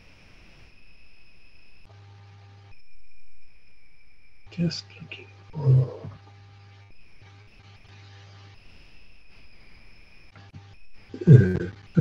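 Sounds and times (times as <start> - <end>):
high electrical whine: 0.0 - 12.0
low mains hum: 0.0 - 12.0.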